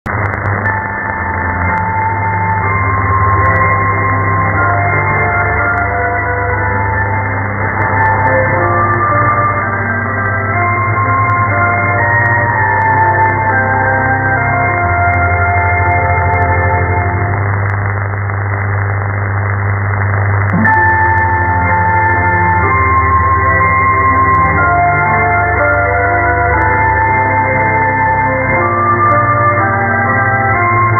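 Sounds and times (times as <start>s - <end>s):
faint static clicks: 0.0s - 30.9s
muffled music over am radio: 0.1s - 30.9s.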